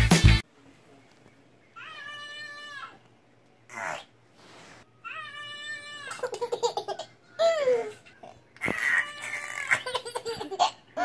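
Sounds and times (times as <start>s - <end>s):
toddler giggling: 6.1s - 8.4s, 9.5s - 11.0s.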